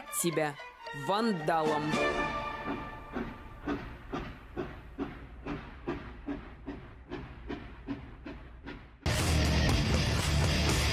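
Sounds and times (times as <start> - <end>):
train wheels clicking over rails: 2.2 - 9.0.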